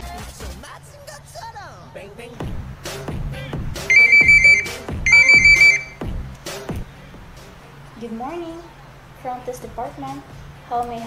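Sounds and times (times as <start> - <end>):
music with thumping beat: 2.4 - 7.4
electronic telephone ringing: 3.9 - 6.0.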